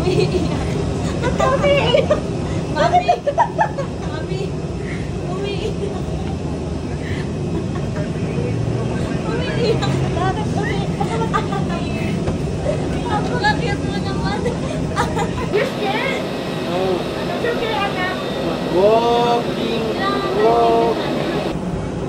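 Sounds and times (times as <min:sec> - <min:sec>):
indistinct chatter: 0:00.0 - 0:21.7
steady low rumble: 0:00.0 - 0:22.0.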